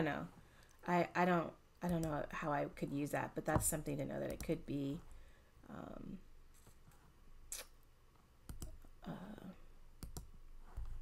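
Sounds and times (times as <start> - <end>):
computer mouse clicks: 8.5 - 8.9, 10.0 - 11.0.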